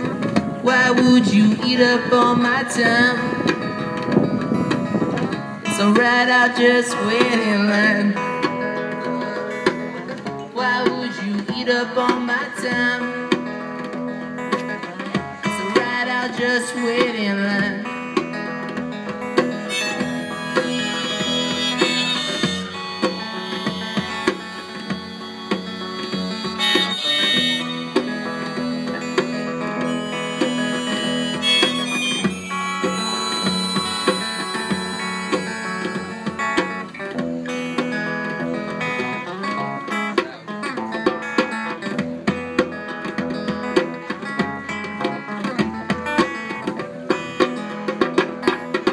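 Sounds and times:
amplified electric guitar: 0.0s - 48.9s
bongos steady beat: 0.0s - 48.9s
harmonica lead: 19.2s - 39.3s.

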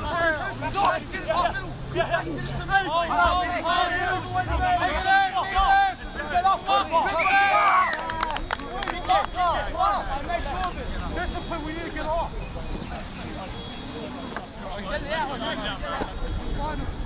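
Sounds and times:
murmur of voices: 0.0s - 17.0s
voices shouting and calling: 0.0s - 17.0s.

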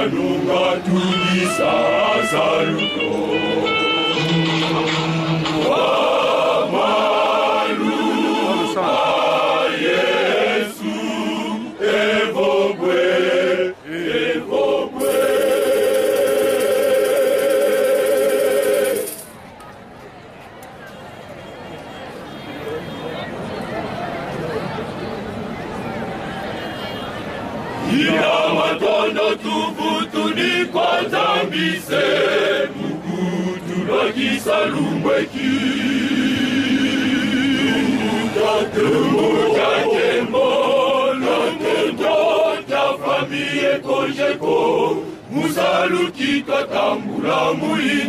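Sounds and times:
male choir singing a hymn: 0.0s - 19.3s, 27.8s - 48.0s.

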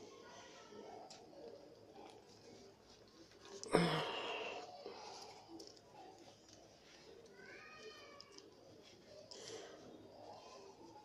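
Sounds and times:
faint handling sounds: 0.0s - 11.0s.

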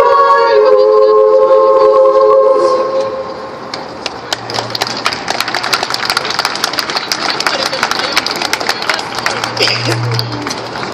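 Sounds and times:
female choir singing chord: 0.0s - 3.3s
audience clapping: 4.0s - 10.9s.

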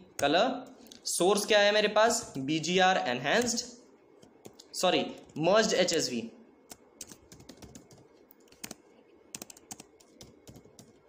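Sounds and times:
keyboard keys clicking: 7.0s - 11.0s.

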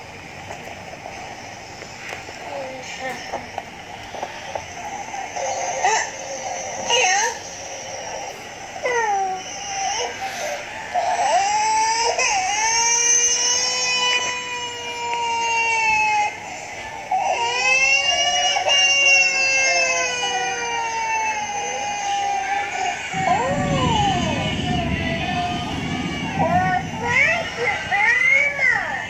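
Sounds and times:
cartoon crying wails: 17.3s - 29.0s.

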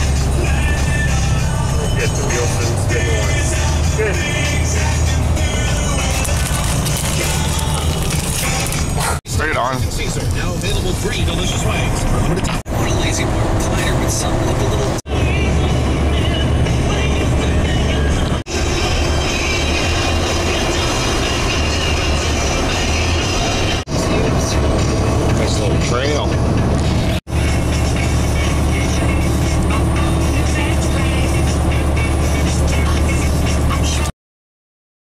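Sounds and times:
engine and road rumble: 0.0s - 34.1s
radio speech and music: 1.8s - 4.6s, 6.0s - 15.4s, 23.9s - 27.2s.

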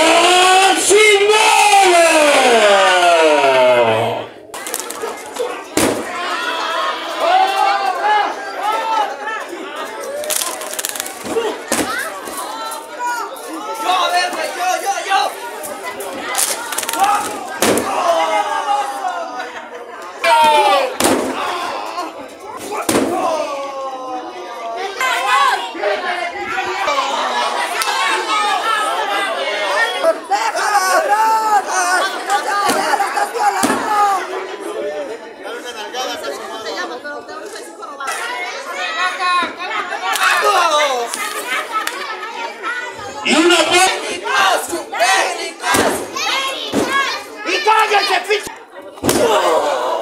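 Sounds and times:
announcer's long call through microphone: 0.0s - 4.4s
crowd chattering: 0.0s - 50.0s.

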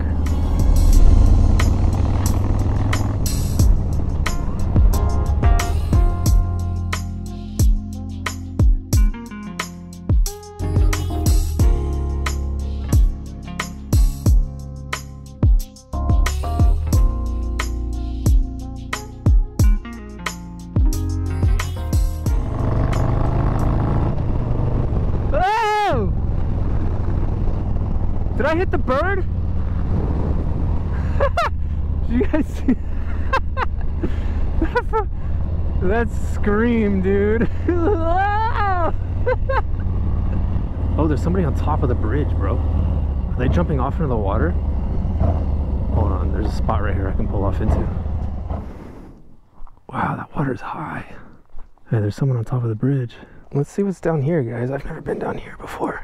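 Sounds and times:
motorcycle engine running: 0.0s - 6.8s, 21.4s - 48.5s
wind: 22.5s - 56.0s.

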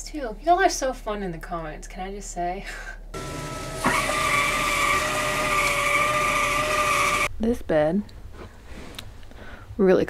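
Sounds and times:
small motor whining: 3.2s - 7.3s.

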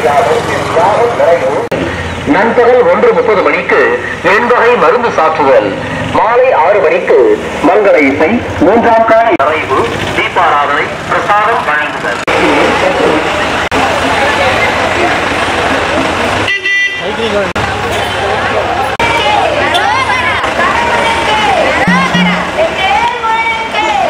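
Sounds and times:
road vehicle noise: 0.0s - 24.0s
noisy din: 21.5s - 23.1s.

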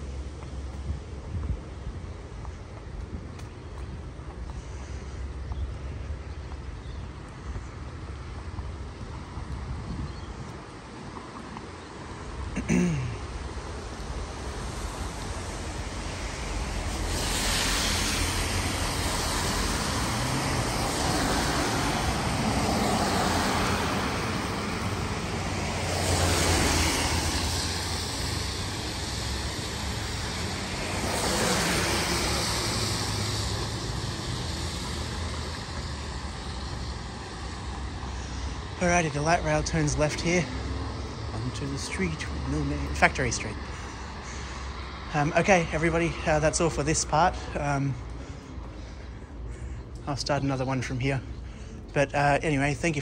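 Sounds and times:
background traffic noise: 0.0s - 53.0s
car tyres hissing on wet asphalt: 13.4s - 49.0s.

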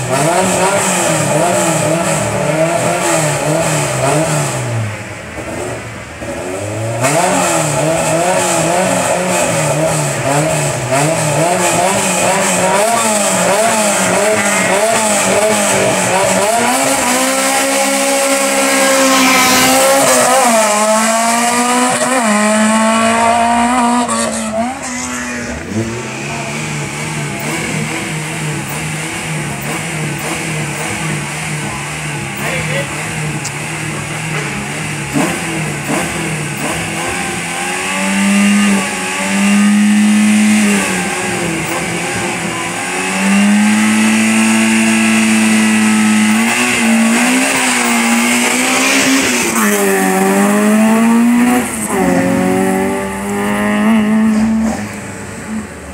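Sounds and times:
race car engine revving: 0.0s - 55.9s.

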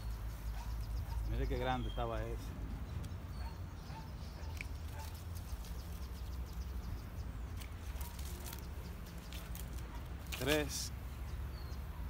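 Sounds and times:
faint bird chirps: 0.0s - 7.2s
pruning shears clicking: 4.4s - 6.1s, 7.5s - 10.8s.

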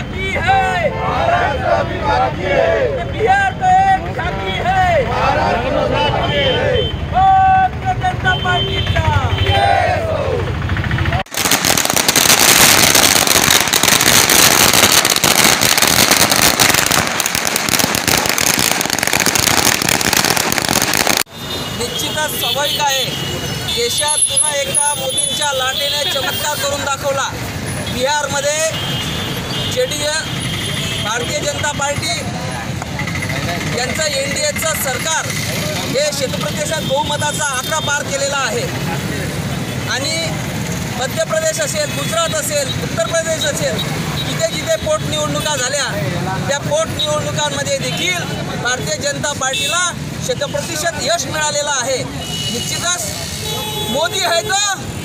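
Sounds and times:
outdoor background noise: 0.0s - 55.0s
firecrackers bangs and crackles: 11.2s - 21.3s.

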